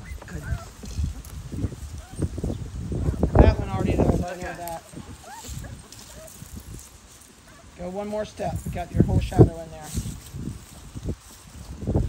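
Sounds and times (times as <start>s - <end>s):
puppies whimpering and yipping: 0.0s - 7.8s.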